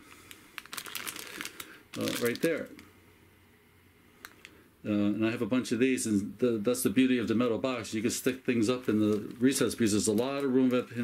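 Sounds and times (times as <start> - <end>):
plastic bag crinkling: 0.0 - 2.9, 8.0 - 11.0.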